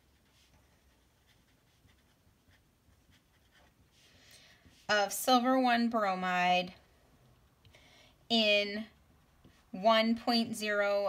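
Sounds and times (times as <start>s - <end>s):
pen scratching on paper: 0.0s - 4.0s.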